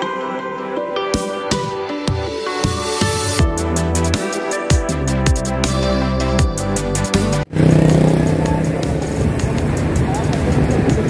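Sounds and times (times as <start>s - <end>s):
background music: 0.0s - 11.0s
road traffic noise: 7.3s - 11.0s
motorcycle and car engines passing: 7.5s - 11.0s.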